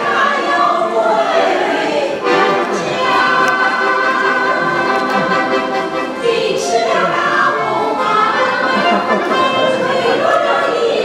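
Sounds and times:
accordion: 0.0s - 11.0s
women's choir singing: 0.0s - 11.0s.

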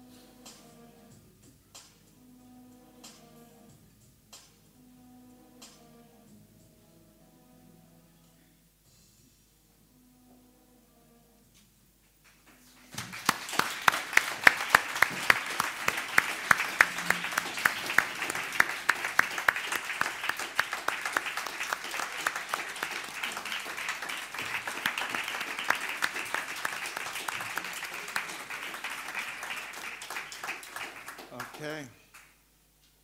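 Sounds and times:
loud sharp claps: 12.0s - 32.4s
audience applauding: 12.2s - 32.4s.

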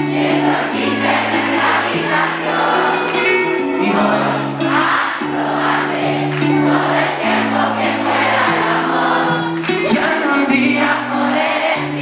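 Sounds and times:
crowd singing along: 0.0s - 12.0s
live band playing chords: 0.0s - 12.0s.

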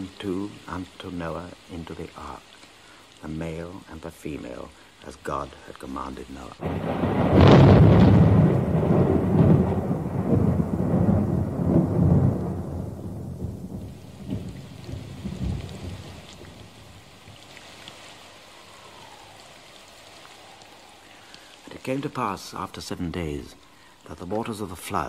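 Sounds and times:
rain: 0.0s - 25.0s
thunder rolling: 6.6s - 17.1s.

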